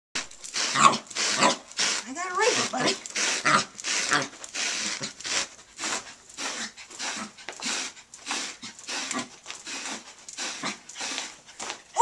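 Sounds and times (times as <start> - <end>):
carpet rake scratching carpet: 0.2 - 12.0
small dog growling: 0.6 - 11.4.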